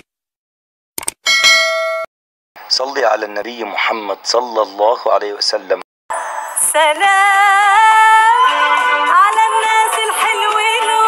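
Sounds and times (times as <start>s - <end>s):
bright bell ding: 1.3s - 2.1s.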